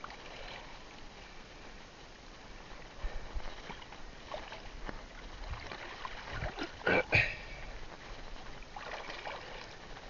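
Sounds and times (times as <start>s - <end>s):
water splashing and dripping: 5.4s - 7.0s, 8.0s - 10.0s.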